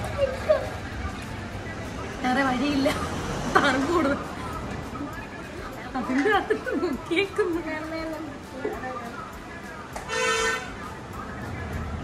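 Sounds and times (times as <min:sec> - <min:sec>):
vehicle horn honk: 0:10.1 - 0:10.7.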